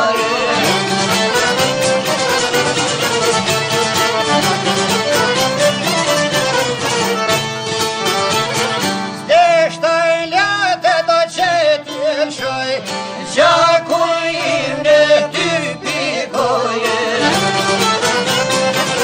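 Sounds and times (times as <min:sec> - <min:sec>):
ornamented wavering lead melody: 0:00.0 - 0:09.2
fiddle and plucked strings: 0:00.0 - 0:19.0.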